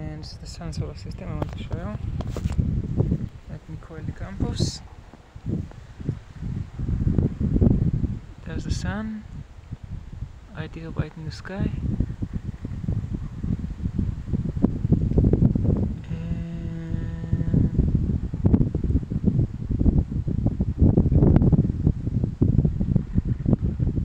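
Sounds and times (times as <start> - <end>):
steady low pitched hum: 0.0 - 24.0
wind buffeting microphone: 0.0 - 24.0.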